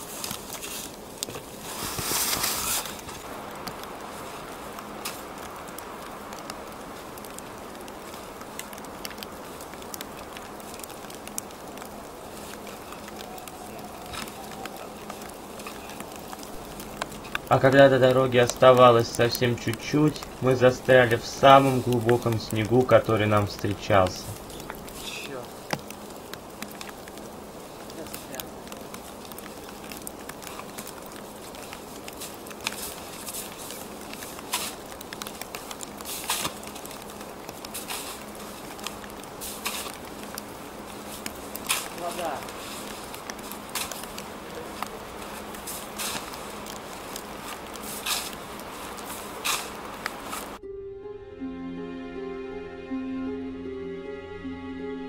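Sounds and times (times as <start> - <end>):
shovel crunching and scraping snow: 0.0 - 3.3, 32.2 - 34.8, 36.0 - 36.6, 37.7 - 38.6, 39.4 - 40.0, 41.1 - 46.5, 47.1 - 50.6
music: 50.6 - 55.0.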